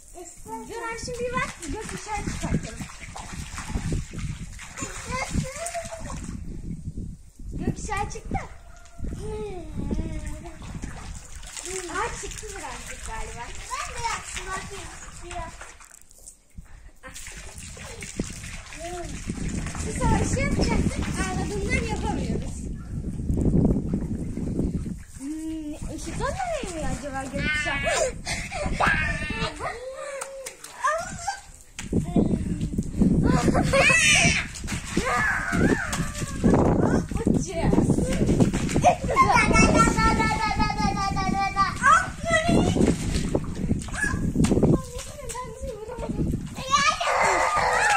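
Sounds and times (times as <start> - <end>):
garden hose water spraying: 0.0 - 6.5, 9.8 - 22.6, 25.0 - 28.0
children shrieking at play: 28.6 - 31.5, 33.3 - 37.1, 43.9 - 44.3, 46.6 - 47.9.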